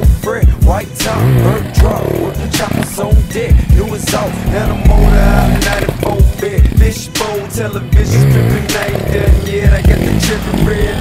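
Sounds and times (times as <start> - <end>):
steady drum beat: 0.0 - 8.4
deep bass notes: 0.0 - 11.0
hip hop music: 0.0 - 11.0.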